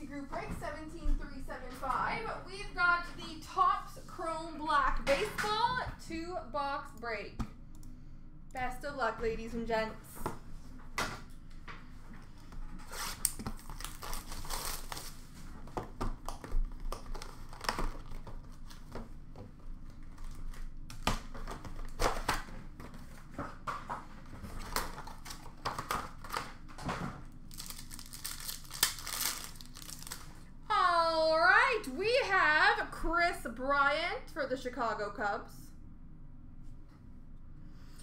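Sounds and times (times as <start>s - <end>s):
cardboard packaging rustling: 12.7s - 26.8s, 27.5s - 30.4s
wrapper crinkling and tearing: 12.8s - 15.4s, 16.3s - 19.0s, 24.5s - 26.6s, 27.4s - 30.5s.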